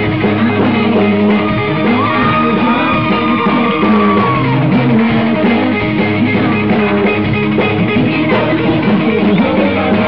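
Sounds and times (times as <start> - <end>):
rock band playing live: 0.0 - 10.0.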